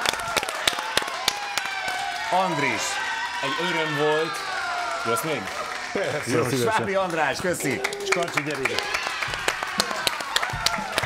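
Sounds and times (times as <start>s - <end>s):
people clapping: 0.0s - 11.0s.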